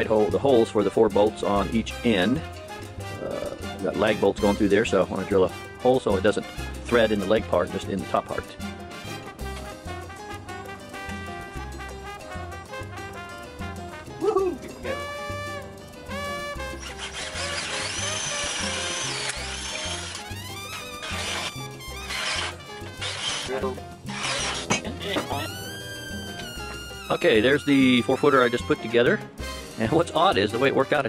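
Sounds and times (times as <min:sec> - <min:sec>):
background music with beat: 0:00.0 - 0:31.0
cordless drill drilling wood: 0:16.6 - 0:24.8.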